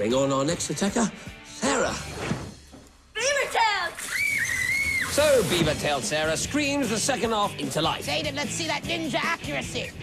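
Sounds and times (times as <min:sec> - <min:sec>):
girl screaming high-pitched: 0:03.2 - 0:05.1.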